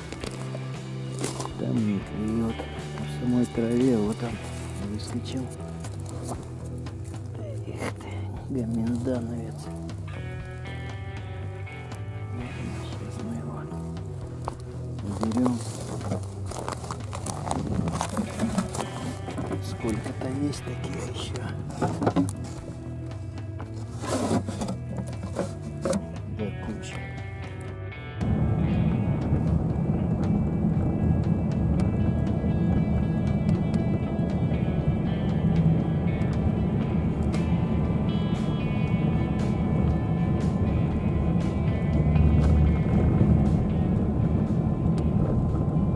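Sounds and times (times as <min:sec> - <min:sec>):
background music: 0:00.0 - 0:45.9
car driving on snow rumble: 0:00.0 - 0:45.9.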